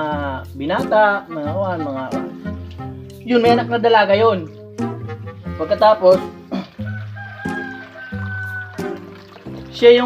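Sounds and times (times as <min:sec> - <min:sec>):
background music: 0:00.0 - 0:10.0
rooster crowing: 0:06.6 - 0:09.3.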